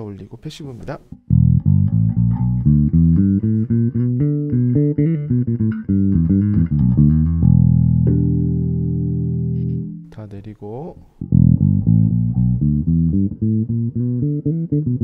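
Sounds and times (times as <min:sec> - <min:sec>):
electric bass played fingerstyle: 0:01.1 - 0:10.3, 0:11.0 - 0:15.0.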